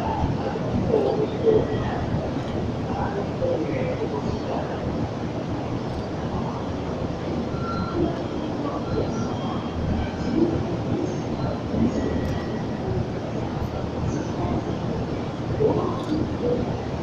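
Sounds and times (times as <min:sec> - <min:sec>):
faint wheel squeals: 0:07.5 - 0:09.8.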